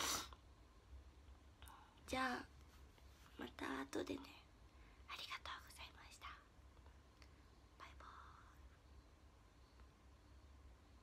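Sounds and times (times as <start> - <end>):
faint whispering: 3.2 - 6.6, 7.2 - 8.8.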